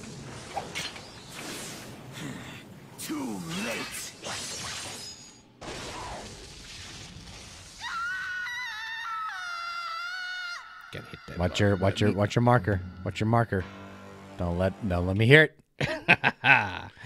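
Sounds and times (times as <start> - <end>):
crashing and shattering effects: 3.5 - 7.8
voice crying out: 7.8 - 12.4.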